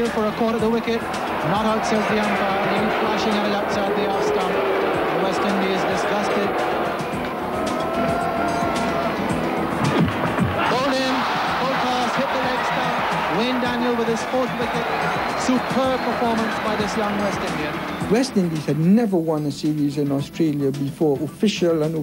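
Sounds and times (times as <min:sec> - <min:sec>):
crowd noise: 0:00.0 - 0:19.4
music: 0:00.0 - 0:22.0.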